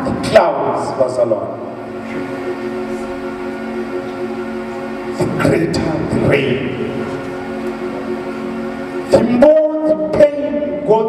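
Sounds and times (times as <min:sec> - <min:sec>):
held chord background music: 0:00.0 - 0:11.0.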